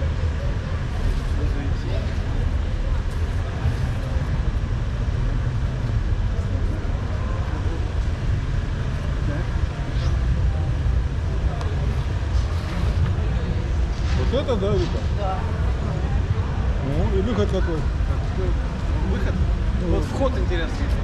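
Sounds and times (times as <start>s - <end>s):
road traffic rumble: 0.0s - 21.0s.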